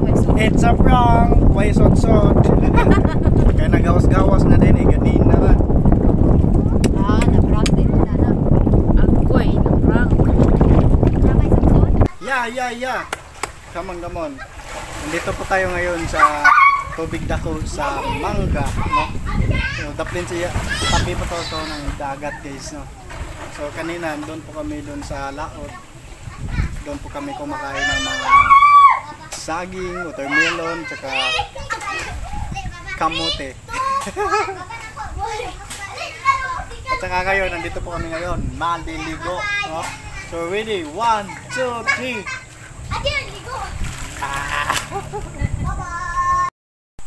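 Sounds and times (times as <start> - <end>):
children talking and calling: 0.0 - 46.5
wind buffeting microphone: 0.0 - 46.5
man's voice: 0.2 - 2.7, 3.4 - 5.6, 15.1 - 19.1
faint voices: 25.7 - 46.4.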